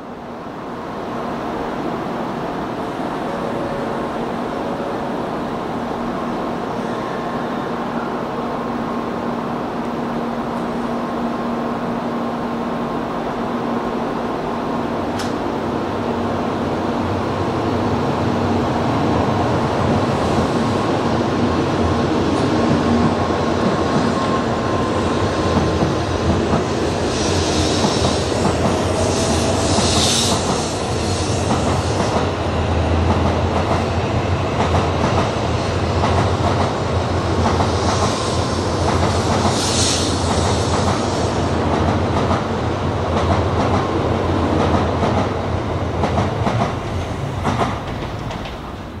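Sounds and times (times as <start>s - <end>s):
train rumbling past: 0.0s - 49.0s
hissing swells: 26.6s - 32.1s.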